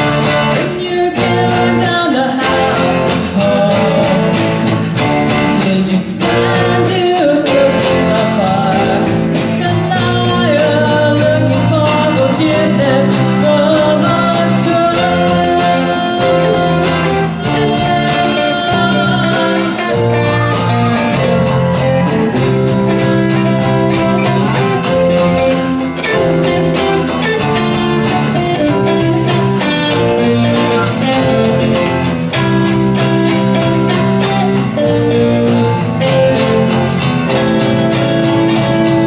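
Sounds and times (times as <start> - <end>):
bass and keyboard: 0.0 - 39.0
electric guitars: 0.0 - 39.0
steady drum beat: 0.0 - 39.0.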